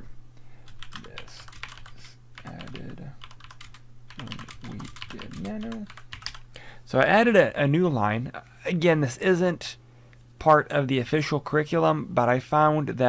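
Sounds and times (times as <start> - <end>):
keyboard typing clicks: 0.7 - 6.4.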